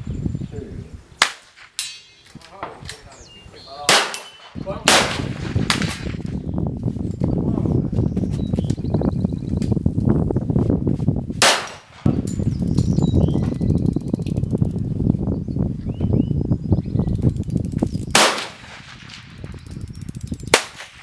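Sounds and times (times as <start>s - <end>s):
pistol shots: 3.9s - 6.1s, 11.4s - 12.1s, 18.2s - 19.3s.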